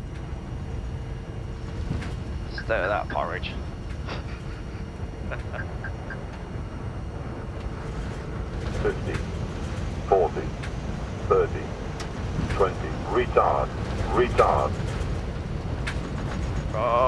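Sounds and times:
rumble of airflow and engines: 0:00.0 - 0:17.0
automated altitude callouts: 0:00.4 - 0:17.0.

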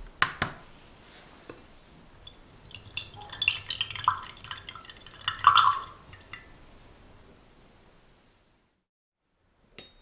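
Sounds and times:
juice pouring into glass mug: 0:02.1 - 0:06.5.

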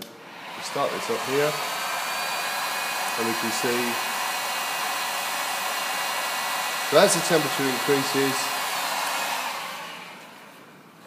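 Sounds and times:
heat gun blowing air: 0:00.0 - 0:10.6.

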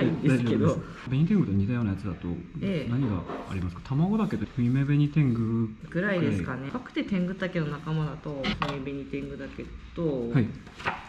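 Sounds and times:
people talking: 0:00.0 - 0:10.5.

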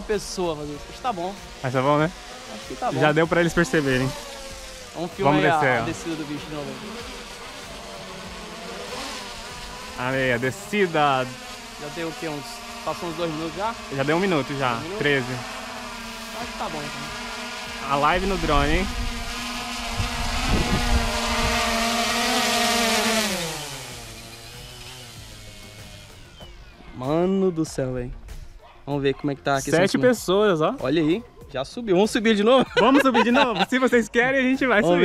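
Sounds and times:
drone propellers buzzing: 0:00.0 - 0:28.7, 0:29.5 - 0:35.0.

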